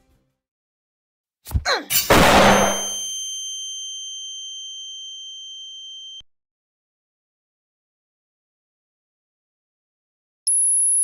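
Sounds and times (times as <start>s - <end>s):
ringing metallic clang: 2.1s - 3.6s.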